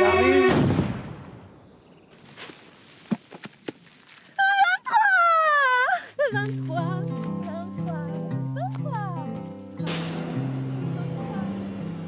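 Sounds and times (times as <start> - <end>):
explosion rumble: 0.5 - 1.6
earth thuds falling: 2.1 - 4.2
woman crying out: 4.4 - 7.8, 8.5 - 9.0.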